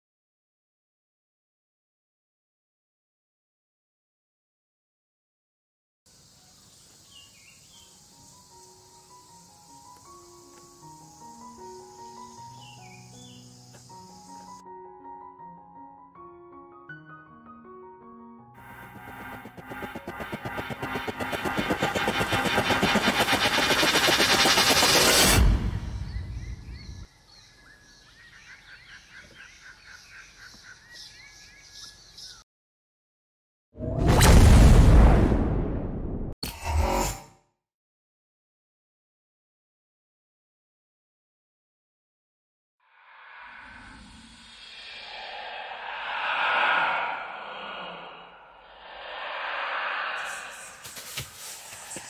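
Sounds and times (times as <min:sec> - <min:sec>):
bird chirping: 0:06.1 - 0:14.6, 0:25.8 - 0:32.4
high insect drone: 0:06.1 - 0:14.6, 0:49.0 - 0:52.0
slow quiet music: 0:07.4 - 0:20.8.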